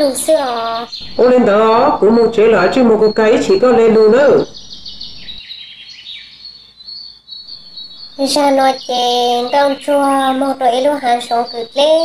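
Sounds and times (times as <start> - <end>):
voice: 0.0 - 4.5, 8.2 - 12.0
birds chirping: 0.0 - 12.0
high bird trill: 0.0 - 12.0.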